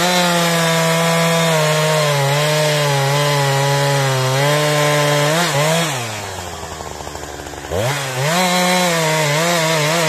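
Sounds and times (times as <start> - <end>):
chainsaw cutting through log: 0.0 - 10.0.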